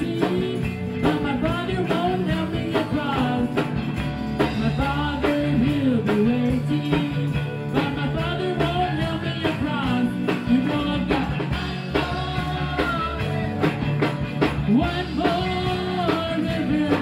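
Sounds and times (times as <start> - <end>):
electric guitar: 0.0 - 17.0
electric keyboard: 0.0 - 17.0.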